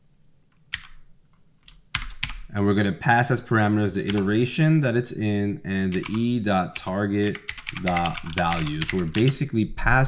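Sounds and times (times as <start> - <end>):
computer keyboard keystrokes: 0.7 - 1.0, 1.6 - 2.5, 5.9 - 6.2, 6.8 - 9.4.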